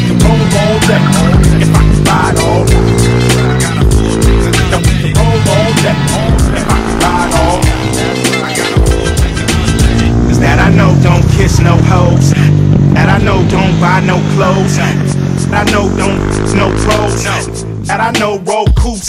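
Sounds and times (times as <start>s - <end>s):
motorcycle engine revving: 0.0s - 18.6s
hip-hop music with steady beat: 0.0s - 19.0s.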